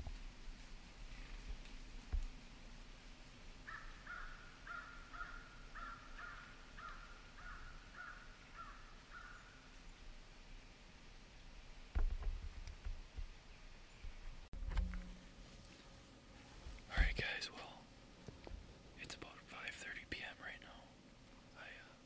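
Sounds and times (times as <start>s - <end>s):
crow cawing: 3.7s - 9.6s.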